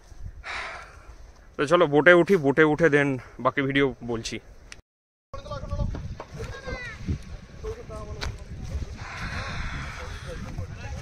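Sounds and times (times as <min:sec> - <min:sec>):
wind rumble on microphone: 0:00.0 - 0:01.6, 0:05.4 - 0:11.0
child's voice: 0:06.6 - 0:07.0.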